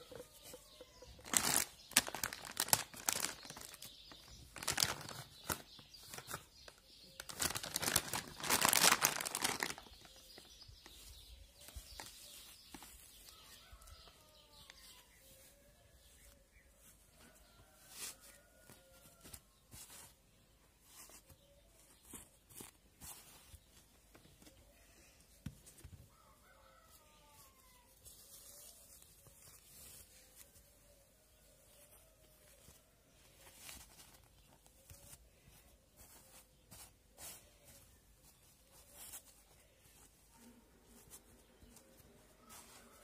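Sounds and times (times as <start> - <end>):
plastic wipes pack crinkling: 0.7 - 11.1, 11.7 - 13.3
rooster crowing faintly: 13.2 - 20.0, 26.0 - 33.0, 38.7 - 43.0.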